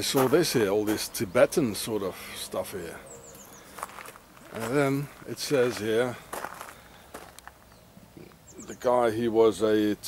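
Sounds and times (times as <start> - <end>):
footsteps on gravel: 0.0 - 1.3, 3.3 - 7.7.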